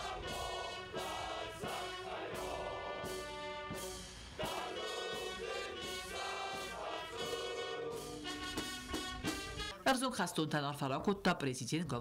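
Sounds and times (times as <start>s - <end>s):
men singing in chorus: 0.0s - 3.7s, 4.4s - 8.6s.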